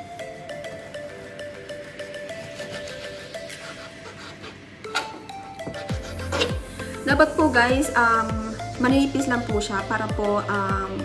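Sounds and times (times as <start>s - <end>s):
mallet background music: 0.0s - 11.0s.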